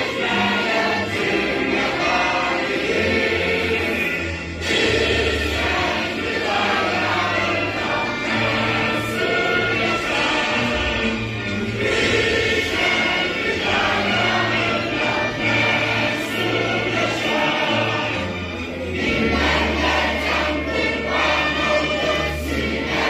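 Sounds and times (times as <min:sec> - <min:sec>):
choir singing: 0:00.0 - 0:23.0
low instrumental accompaniment: 0:00.0 - 0:23.0.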